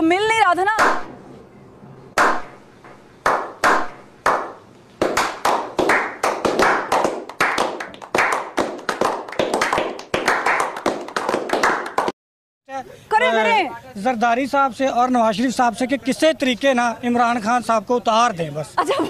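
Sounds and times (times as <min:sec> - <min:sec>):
hand clapping: 0:00.8 - 0:01.1, 0:02.2 - 0:02.5, 0:03.2 - 0:12.2.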